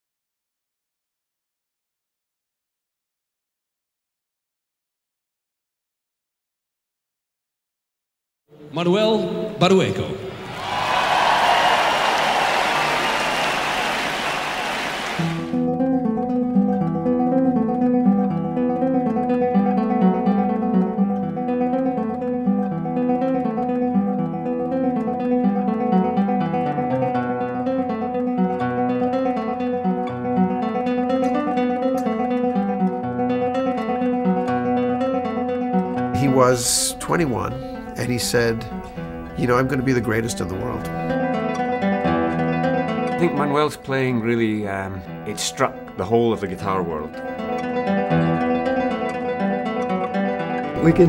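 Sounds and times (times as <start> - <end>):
crowd cheering and applauding: 10.4 - 15.6
solo classical guitar fingerpicking: 15.3 - 36.4, 40.9 - 43.4, 46.7 - 51.0.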